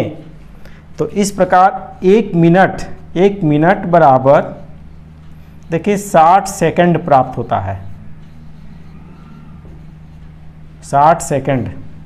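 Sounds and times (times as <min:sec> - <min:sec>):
steady low hum: 0:00.0 - 0:12.0
marker writing on whiteboard: 0:03.8 - 0:12.0.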